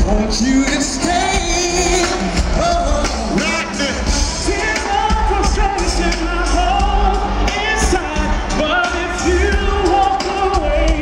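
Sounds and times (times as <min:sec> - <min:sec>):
heavy bass: 0:00.0 - 0:11.0
keyboards: 0:00.0 - 0:11.0
men singing: 0:00.0 - 0:11.0.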